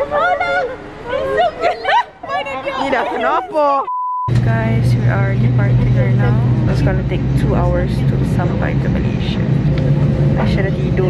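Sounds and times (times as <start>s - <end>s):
voices: 0.0s - 11.0s
airliner cabin drone: 4.3s - 11.0s.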